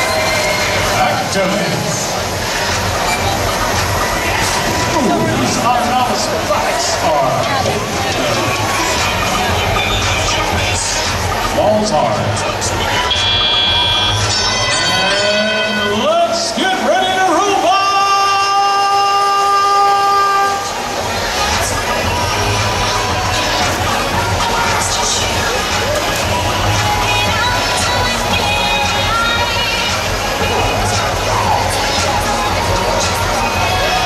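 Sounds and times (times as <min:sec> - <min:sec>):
crowd noise: 0:00.0 - 0:34.0
arena horn steady tone: 0:13.0 - 0:16.2.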